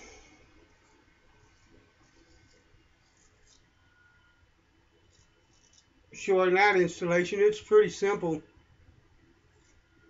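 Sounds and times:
laptop fan whine: 0.0s - 10.0s.

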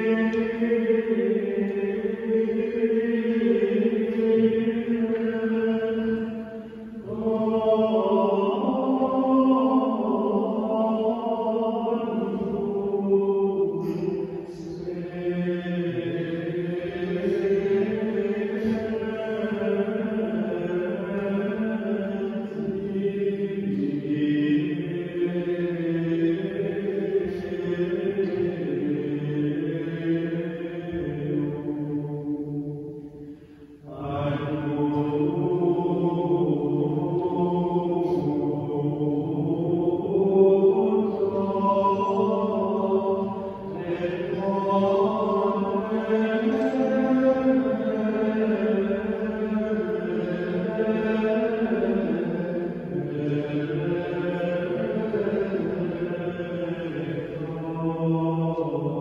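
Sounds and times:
monks chanting: 0.0s - 59.0s.

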